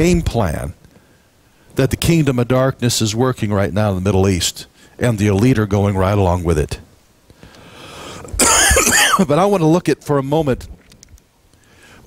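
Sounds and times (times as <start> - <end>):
man coughing: 8.4 - 9.4.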